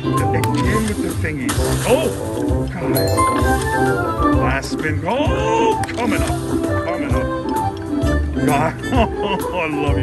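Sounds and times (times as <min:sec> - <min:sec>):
electronic slot machine music: 0:03.0 - 0:04.8.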